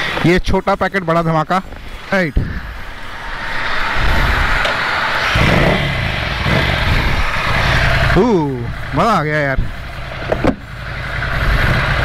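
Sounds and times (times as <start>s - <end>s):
motorcycle accelerating: 1.9s - 12.0s.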